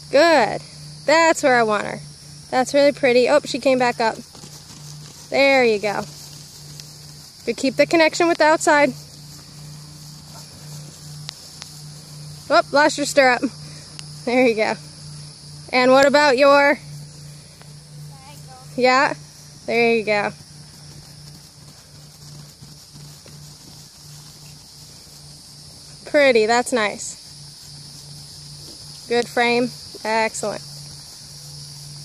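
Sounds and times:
high insect drone: 0:00.0 - 0:32.0
low hum: 0:00.0 - 0:32.0
horse hoofbeats on grass: 0:02.1 - 0:32.0.

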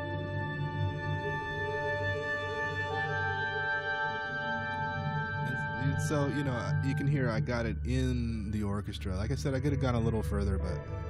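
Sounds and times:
orchestra playing chords: 0:00.9 - 0:08.0.

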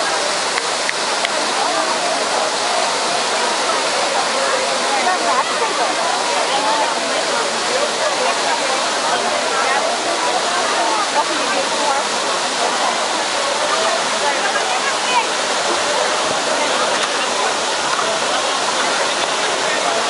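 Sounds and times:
crowd voices babbling: 0:00.0 - 0:20.0
fountain water rushing: 0:00.0 - 0:20.0.

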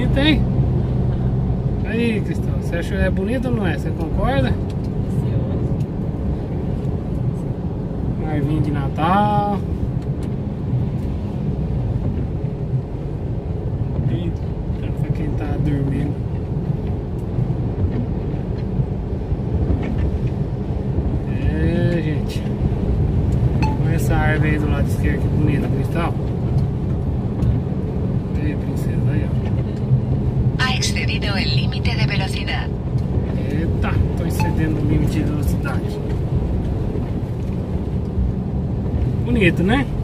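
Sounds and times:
truck engine and tyres drone: 0:00.0 - 0:40.0.

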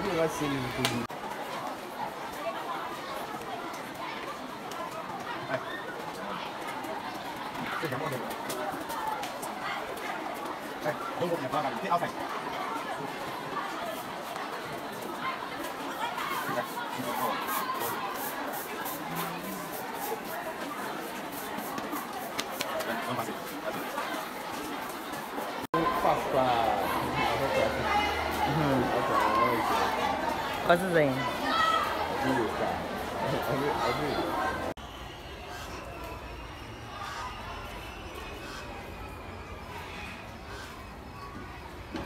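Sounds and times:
children's voices chattering: 0:00.0 - 0:42.0.

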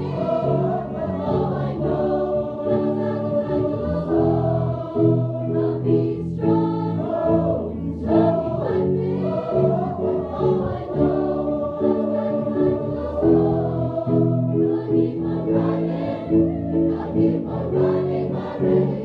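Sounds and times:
choir singing: 0:00.0 - 0:19.0.

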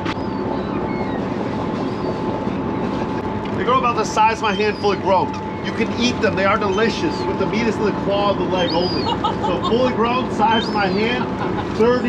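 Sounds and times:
boat engine drone: 0:00.0 - 0:12.0
hydraulic hauler whine: 0:00.0 - 0:12.0.

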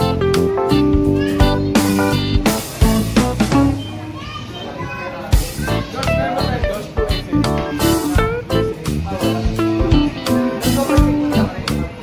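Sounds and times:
background guitar music: 0:00.0 - 0:03.8, 0:05.5 - 0:12.0
child's voice: 0:01.0 - 0:02.2, 0:04.0 - 0:06.4.

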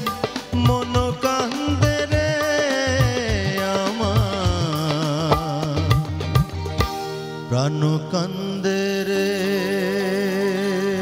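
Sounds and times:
live band accompaniment: 0:00.0 - 0:11.0
man singing: 0:00.0 - 0:11.0.

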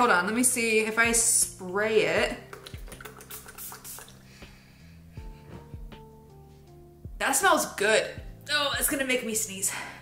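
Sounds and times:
spray bottle hissing: 0:02.6 - 0:04.3.

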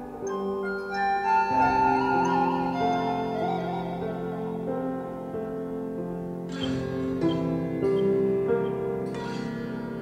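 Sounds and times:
prepared piano notes: 0:00.0 - 0:10.0.

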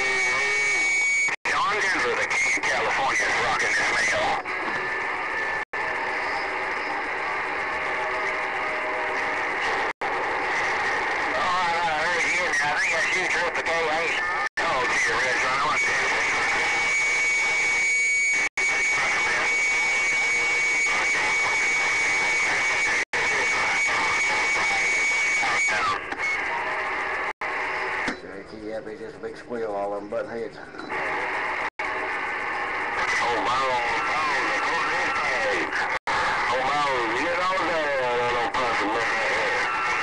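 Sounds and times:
garbled radio signals: 0:00.0 - 0:40.0
radio static: 0:00.0 - 0:40.0.

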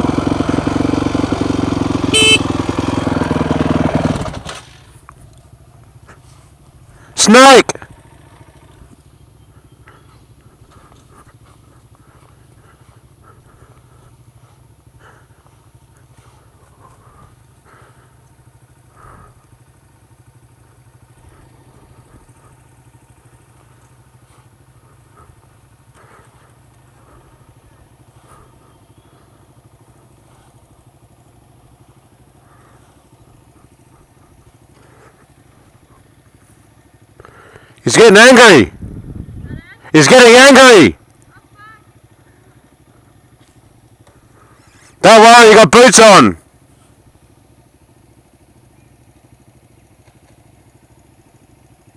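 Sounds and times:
dirt bike engine idling: 0:00.0 - 0:51.9.

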